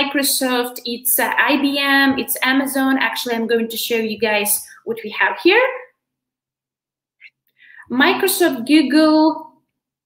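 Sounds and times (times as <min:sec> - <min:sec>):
woman speaking: 0:00.0 - 0:06.0, 0:07.7 - 0:09.6
soft breathy sounds: 0:07.2 - 0:07.9.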